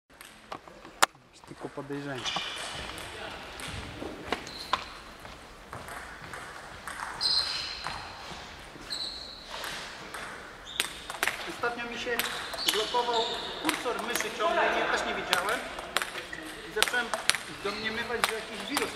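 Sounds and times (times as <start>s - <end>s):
high squeaks: 4.4s - 5.0s, 8.8s - 9.7s, 12.2s - 14.3s
table tennis balls clicking: 5.7s - 8.1s, 9.5s - 14.4s, 15.2s - 18.9s.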